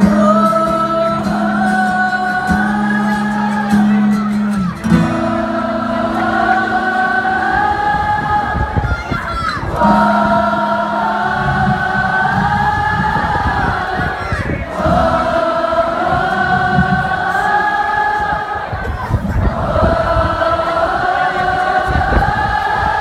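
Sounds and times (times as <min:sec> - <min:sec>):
acoustic guitar: 0:00.0 - 0:17.6
crowd singing along: 0:00.0 - 0:23.0.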